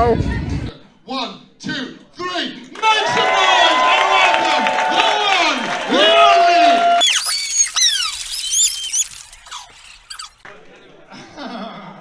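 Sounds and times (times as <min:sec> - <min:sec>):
high-pitched squeaky cries: 0:07.0 - 0:10.4.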